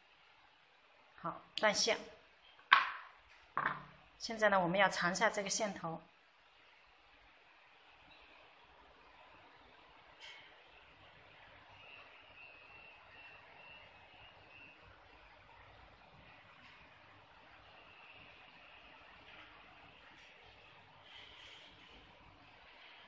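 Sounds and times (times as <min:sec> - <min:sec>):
faint room hiss: 0:00.0 - 0:23.0.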